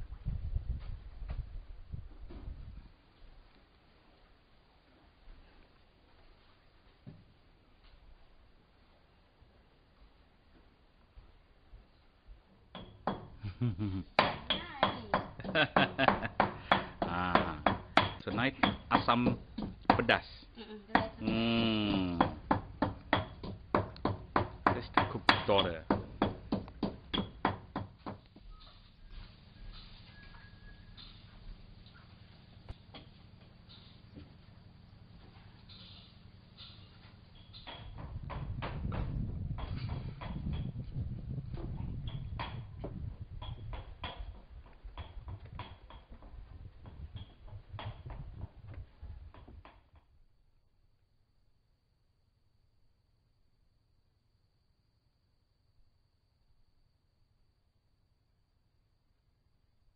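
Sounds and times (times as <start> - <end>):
pestle pounding in a mortar: 14.2 - 20.1, 22.1 - 28.2, 37.6 - 40.8.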